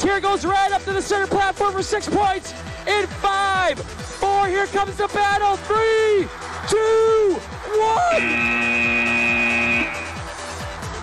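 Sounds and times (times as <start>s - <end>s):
electronic music with steady beat: 0.0s - 11.0s
buzzer tone: 8.1s - 10.2s.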